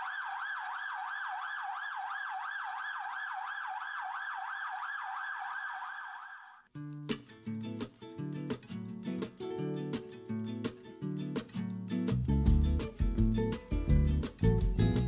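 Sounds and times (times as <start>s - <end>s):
ambulance siren yelping: 0.0s - 6.6s
guitar music: 6.8s - 15.0s.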